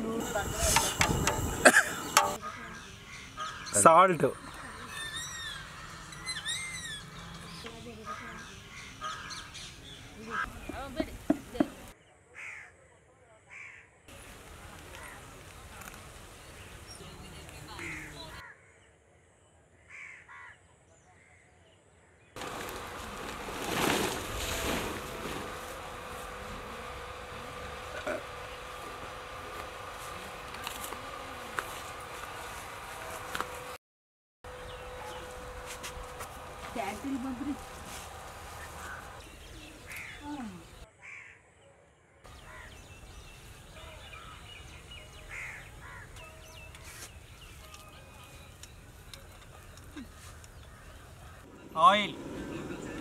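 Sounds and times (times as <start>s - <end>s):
steady outdoor noise: 0.0s - 19.9s, 20.6s - 33.8s, 34.5s - 53.0s
bird calls: 0.2s - 12.7s, 16.4s - 18.5s, 38.5s - 41.4s, 42.3s - 53.0s
crows cawing: 8.0s - 9.5s, 12.4s - 12.7s, 13.5s - 13.8s, 17.8s - 18.8s, 19.9s - 20.6s, 38.8s - 39.2s, 41.0s - 41.4s, 42.4s - 42.8s, 45.3s - 46.2s.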